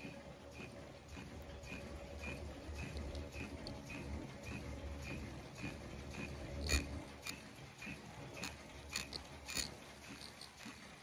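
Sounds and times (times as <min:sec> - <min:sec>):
machine clicking: 0:00.0 - 0:11.0
mask machine humming: 0:00.0 - 0:11.0.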